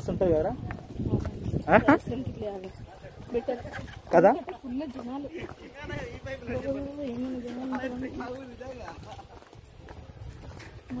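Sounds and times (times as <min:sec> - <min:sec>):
footsteps on paved stairs: 0:00.0 - 0:11.0.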